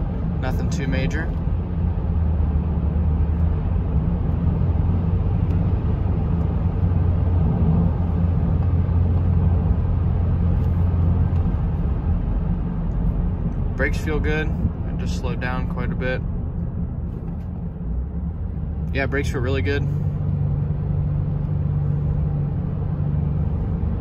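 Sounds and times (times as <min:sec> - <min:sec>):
car cabin road rumble: 0:00.0 - 0:24.0.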